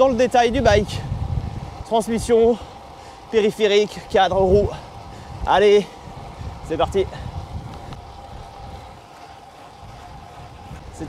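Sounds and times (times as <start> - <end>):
bike tyres rolling on tarmac: 0.0 - 11.0
wind rush on microphone: 0.0 - 11.0.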